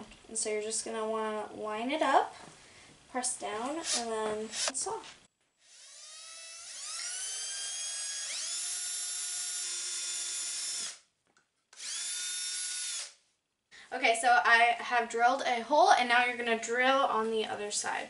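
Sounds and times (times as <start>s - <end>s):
cordless drill boring into wood: 3.8s - 4.7s, 5.6s - 11.1s, 11.8s - 13.2s.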